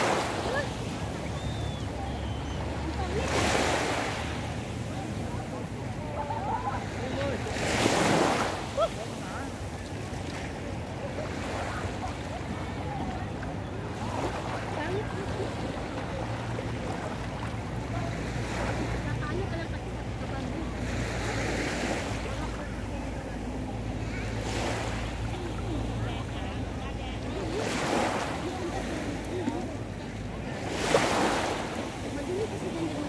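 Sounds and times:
low rumble of wind and surf: 0.0s - 33.0s
small waves washing onto beach: 0.0s - 33.0s.

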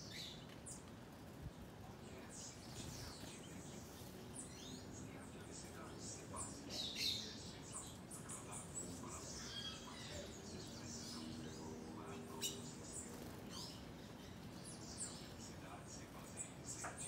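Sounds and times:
birds chirping: 0.0s - 17.0s
faint low hum: 0.0s - 17.0s.

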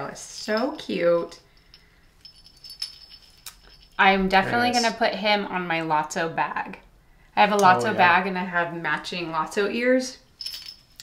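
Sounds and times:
small metal bell jingling: 0.4s - 5.0s, 10.2s - 11.0s.

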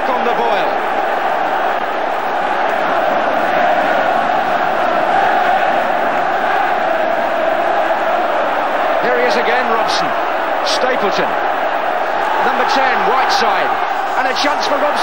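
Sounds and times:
stadium crowd chanting and singing: 0.0s - 15.0s.

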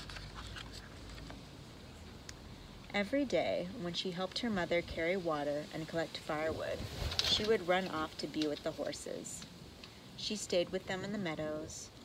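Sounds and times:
paper rustling: 0.0s - 1.4s.

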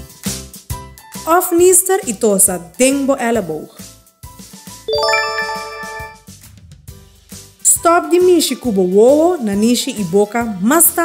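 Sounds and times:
light background music: 0.0s - 11.0s
bright bell-like chime: 4.9s - 6.2s.

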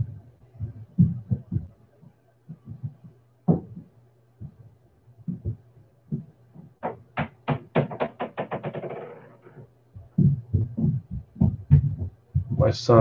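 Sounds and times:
heavy low thuds: 0.0s - 1.8s, 2.5s - 8.8s, 9.9s - 13.0s
plastic ball bouncing on floor: 2.6s - 4.6s, 5.3s - 9.3s, 10.0s - 12.6s.

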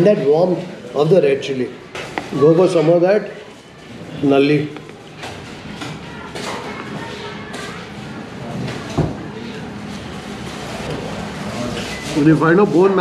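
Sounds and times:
faint background voices: 0.0s - 13.0s.

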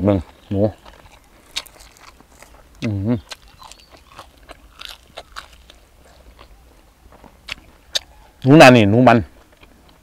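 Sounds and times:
person chewing close to microphone: 0.0s - 8.5s, 9.4s - 10.0s
crunchy clicks: 0.2s - 6.5s.

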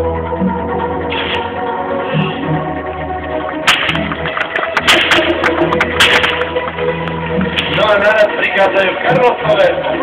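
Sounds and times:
background music: 0.0s - 10.0s
whip cracks: 3.6s - 6.7s.

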